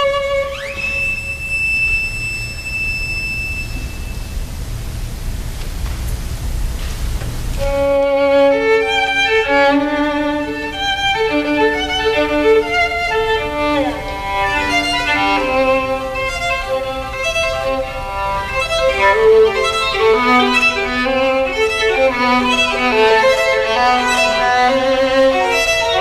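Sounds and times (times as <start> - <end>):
violin playing classical melody: 0.0 - 1.3, 7.6 - 26.0.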